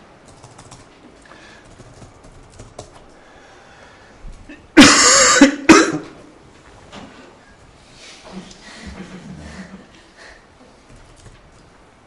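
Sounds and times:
man coughing: 4.5s - 6.2s.

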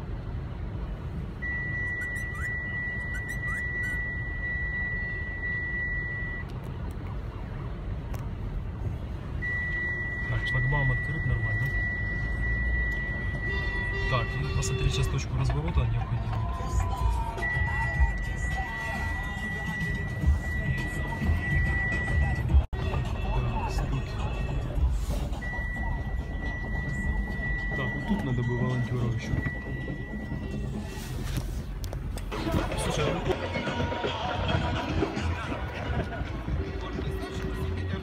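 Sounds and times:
road and engine rumble in car: 0.0s - 38.0s
steady high tone: 16.9s - 31.0s.

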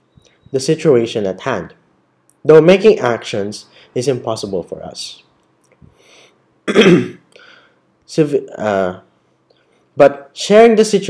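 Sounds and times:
man clearing his throat: 6.7s - 7.3s.

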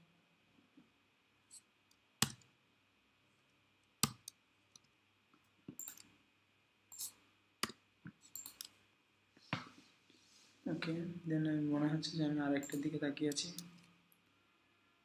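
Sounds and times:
computer mouse clicks: 5.7s - 6.1s, 6.9s - 8.8s.

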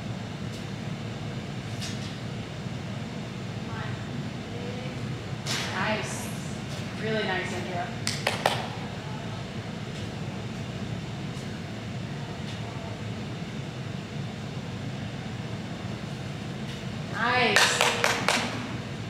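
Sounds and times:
gym room hum: 0.0s - 19.0s.

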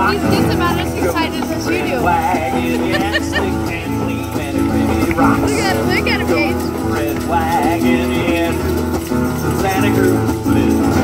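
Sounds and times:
children singing: 0.0s - 8.7s
acoustic guitar: 0.0s - 11.0s
shakers: 0.0s - 11.0s.

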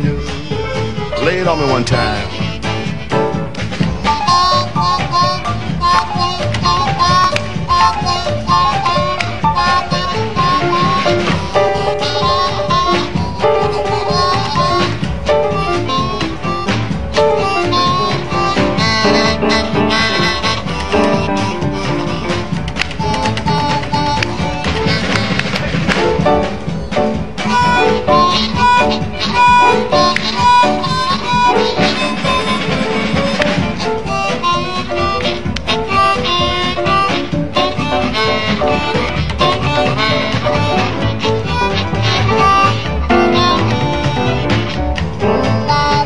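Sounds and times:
band drum and rhythm beat: 0.0s - 46.0s
blues harmonica solo: 0.0s - 46.0s.

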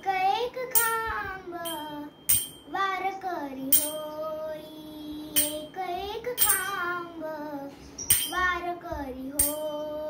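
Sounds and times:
hand cymbals clashing: 1.6s - 2.7s, 3.7s - 4.3s, 5.4s - 5.7s, 6.4s - 6.9s, 8.0s - 8.5s, 9.4s - 9.8s.

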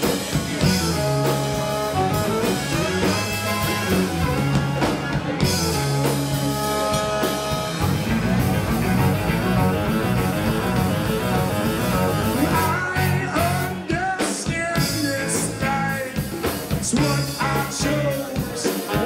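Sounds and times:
electric guitar lines: 0.0s - 13.9s
drum kit steady beat: 0.0s - 19.0s
electric bass line: 0.0s - 19.0s.

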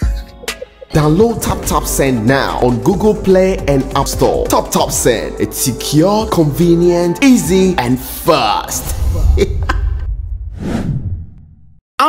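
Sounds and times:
bass-heavy music: 0.0s - 9.8s
whoosh sound effect: 8.8s - 11.4s.

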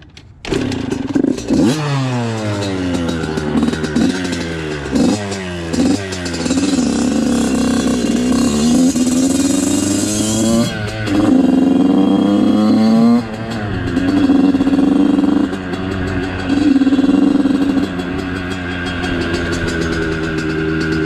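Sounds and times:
dirt bike engine revving: 0.5s - 21.0s.

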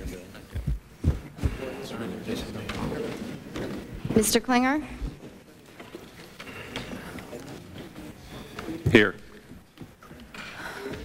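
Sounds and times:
faint murmur of voices: 0.0s - 11.0s.

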